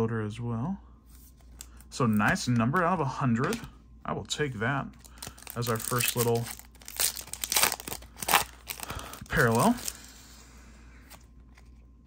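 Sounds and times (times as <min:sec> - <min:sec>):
foil crinkling: 0:05.0 - 0:10.0
foil wrapper tearing: 0:05.0 - 0:10.0.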